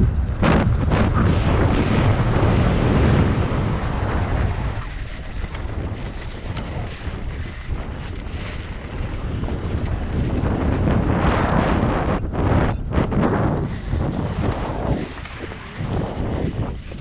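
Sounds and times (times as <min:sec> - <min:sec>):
bike tyres rumbling on dirt trail: 0:00.0 - 0:17.0
wind rushing over microphone: 0:00.0 - 0:17.0.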